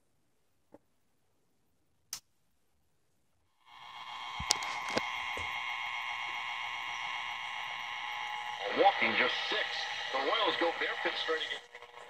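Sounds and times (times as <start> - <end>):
radio whistling hiss: 3.7 - 12.0
radio crackles: 3.9 - 12.0
broadcast voice: 8.6 - 11.6.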